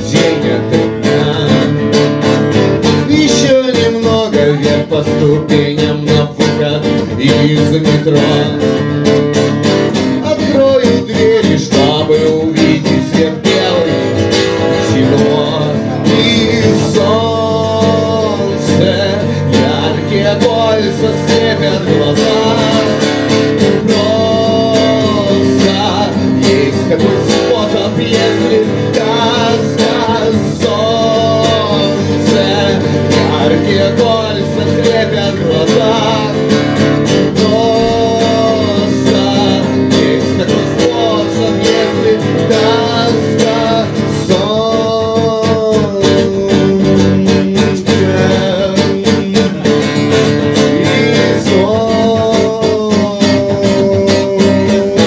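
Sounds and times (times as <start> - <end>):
strummed acoustic guitar: 0.0 - 55.0.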